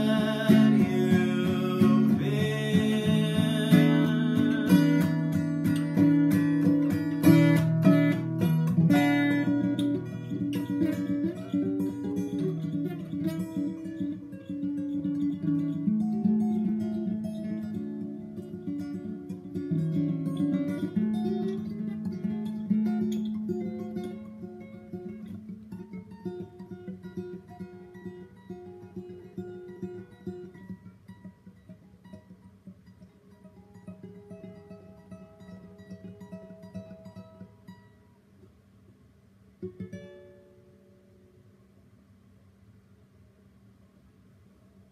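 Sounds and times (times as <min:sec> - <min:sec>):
acoustic guitar: 0:00.0 - 0:44.9.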